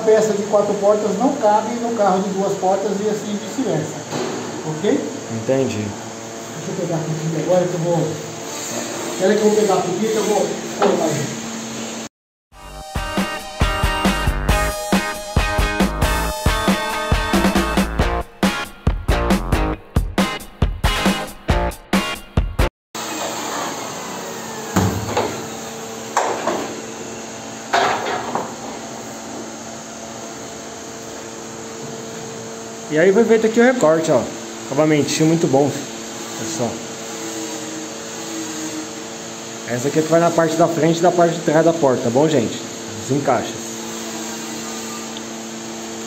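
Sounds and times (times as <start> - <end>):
workshop machinery hum: 0.0 - 22.3, 23.0 - 46.0
background music: 12.6 - 22.7.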